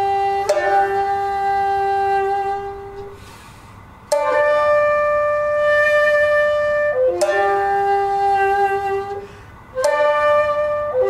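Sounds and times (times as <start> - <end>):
shakuhachi long note: 0.0 - 3.5, 4.1 - 11.0.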